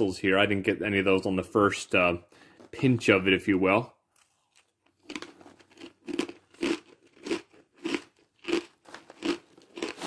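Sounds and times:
person chewing crunchy snack: 4.1s - 10.0s.

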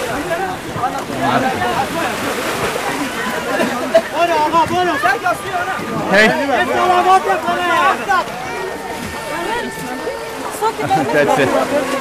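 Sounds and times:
people talking and calling out: 0.0s - 12.0s
water sloshing around boat: 0.0s - 12.0s.

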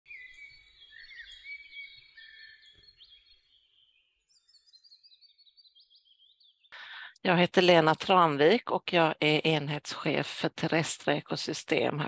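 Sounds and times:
birds chirping and trilling: 0.1s - 7.8s.

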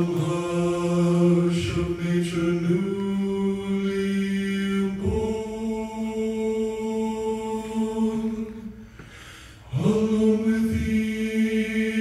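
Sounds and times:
male vocal quartet singing harmony: 0.0s - 12.0s.

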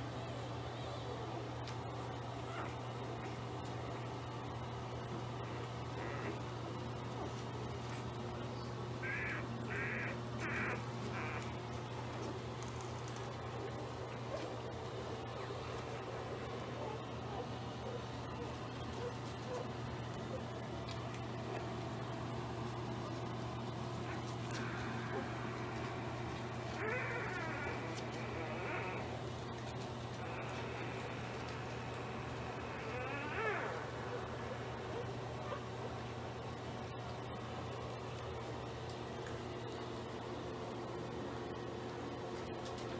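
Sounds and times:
steady low hum: 0.0s - 42.9s
puppy crying: 5.4s - 6.4s, 9.0s - 13.4s, 24.0s - 35.7s
puppies squeaking and whimpering: 9.2s - 11.6s, 26.7s - 29.2s, 32.6s - 34.3s.

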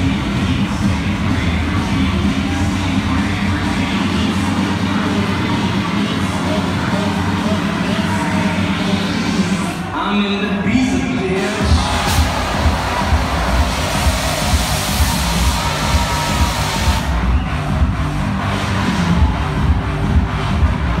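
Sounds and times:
loud electronic dance music: 0.0s - 21.0s
high noise rush: 11.3s - 21.0s.

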